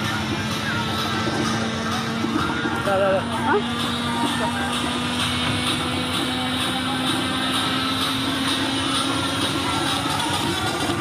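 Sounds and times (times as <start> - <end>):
fairground din: 0.0 - 11.0
loud mechanical drone: 0.0 - 11.0.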